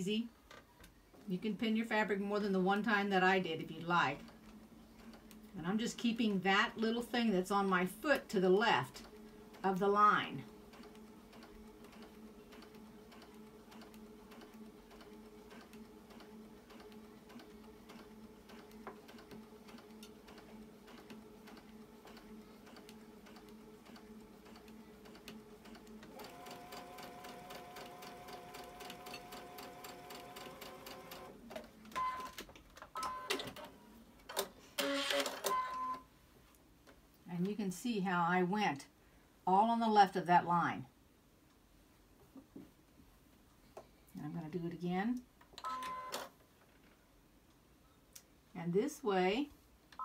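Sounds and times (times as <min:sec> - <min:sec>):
sewing machine stitching: 0:03.8 - 0:32.4, 0:34.3 - 0:35.6.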